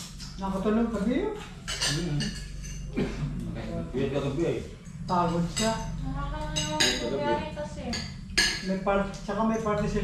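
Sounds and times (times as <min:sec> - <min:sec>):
cutlery clinking on plates: 0:01.4 - 0:03.1.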